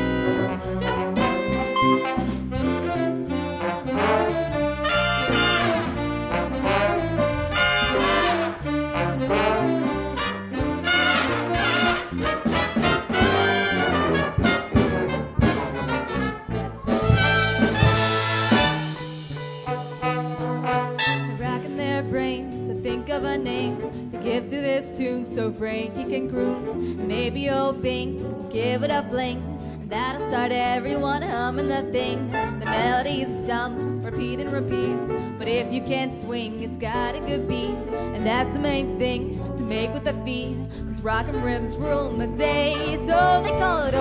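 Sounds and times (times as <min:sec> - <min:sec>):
big band jazz horns: 0:00.0 - 0:44.0
drums: 0:00.0 - 0:44.0.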